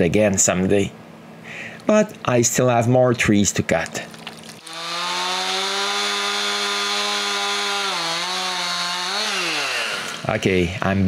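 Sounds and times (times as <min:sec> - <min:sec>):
chainsaw running at high revs: 0:04.6 - 0:10.4.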